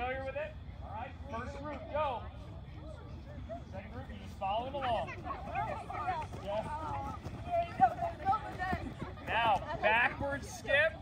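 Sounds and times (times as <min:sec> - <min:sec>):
girls chattering and calling out: 0:00.7 - 0:11.0
feet skipping on artificial turf: 0:03.5 - 0:11.0.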